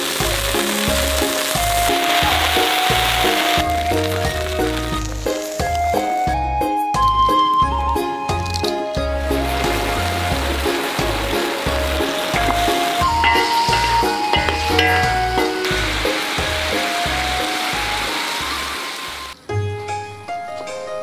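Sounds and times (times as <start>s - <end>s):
food sizzling in a wok: 0.0s - 6.4s, 9.1s - 19.5s
background music with steady beat: 11.8s - 16.0s.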